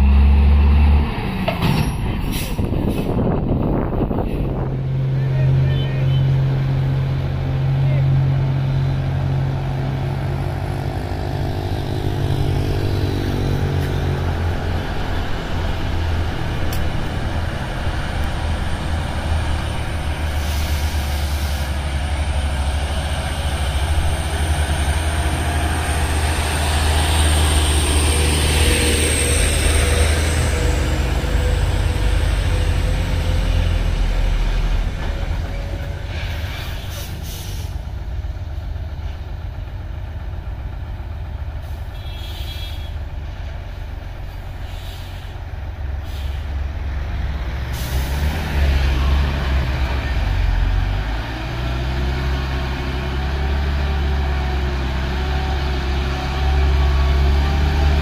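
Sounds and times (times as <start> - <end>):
diesel truck engines labouring: 0.0 - 58.0
hiss: 20.3 - 21.8, 44.3 - 45.4, 46.0 - 46.6, 47.7 - 48.2.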